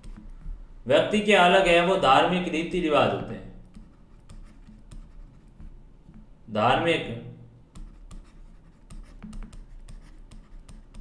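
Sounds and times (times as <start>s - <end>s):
stylus tapping and scratching: 0.0s - 0.7s, 3.5s - 6.4s, 7.7s - 11.0s.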